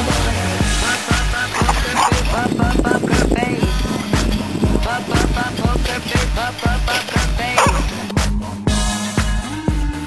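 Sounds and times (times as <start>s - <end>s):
electronic dance-pop music: 1.1s - 3.7s, 4.6s - 8.1s.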